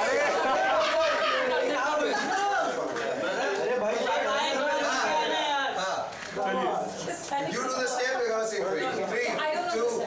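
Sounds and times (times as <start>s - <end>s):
overlapping chatter of voices: 0.0s - 10.0s.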